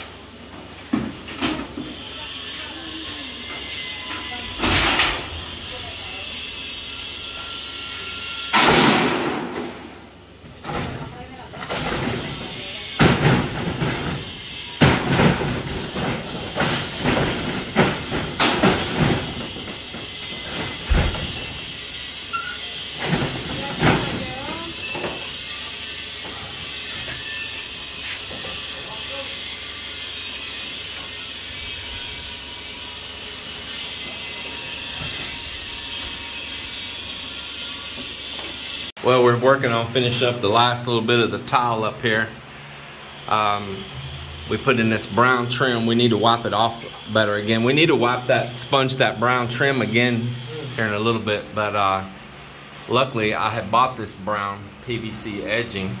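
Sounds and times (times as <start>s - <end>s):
sharp bangs and knocks: 8.5s - 10.0s, 11.6s - 22.1s, 22.9s - 25.3s
loud crash: 8.6s - 9.8s
metal roofing sheets rattling: 11.6s - 21.9s, 22.8s - 25.1s.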